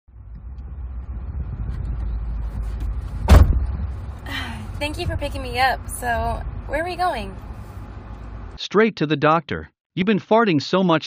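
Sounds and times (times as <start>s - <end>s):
car idling: 0.2s - 8.6s
car door shutting: 3.0s - 3.8s.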